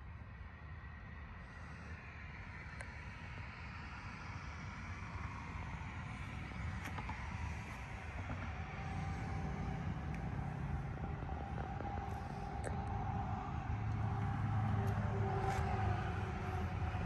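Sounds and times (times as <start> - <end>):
vehicle engine rumbling: 5.8 - 17.0.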